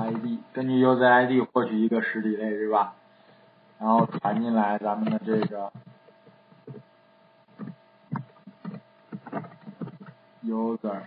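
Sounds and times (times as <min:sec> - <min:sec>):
keyboard keystrokes: 0:07.6 - 0:10.2.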